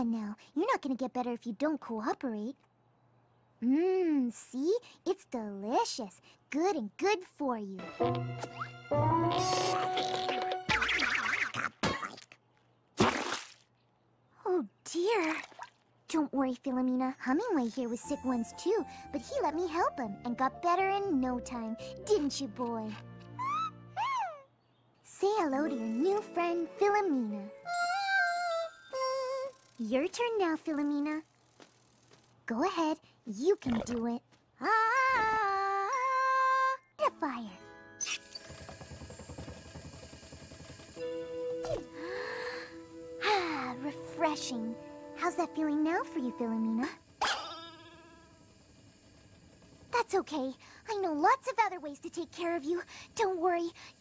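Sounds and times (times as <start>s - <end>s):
low background music: 7.8s - 10.7s, 41.0s - 46.6s
cartoon bird chirping: 8.5s - 11.8s, 23.4s - 24.6s, 38.0s - 38.4s.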